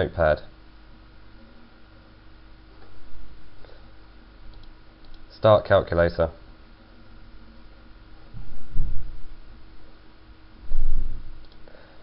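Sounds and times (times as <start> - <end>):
microphone hum and hiss: 0.0 - 12.0.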